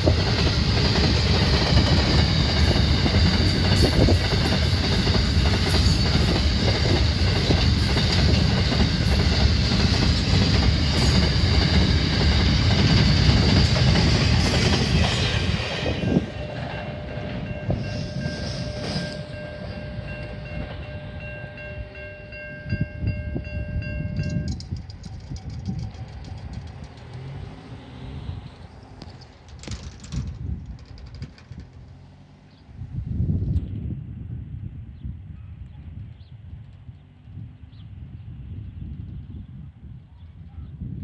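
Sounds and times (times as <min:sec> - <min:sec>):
freight train wheels rumbling: 0:00.0 - 0:34.8
level crossing warning bell: 0:15.6 - 0:24.6
road vehicle passing: 0:25.8 - 0:30.0, 0:31.5 - 0:33.4.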